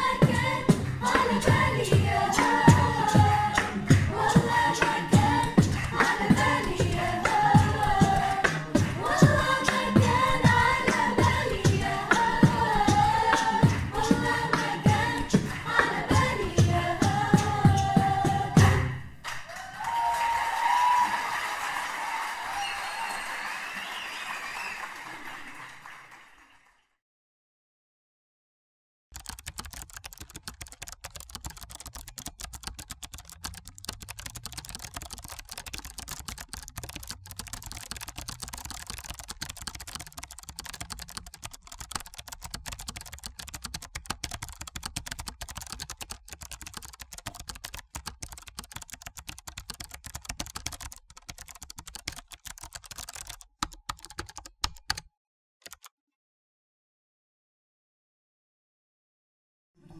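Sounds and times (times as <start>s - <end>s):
rapid keyboard typing: 0.0s - 18.0s, 29.2s - 55.9s.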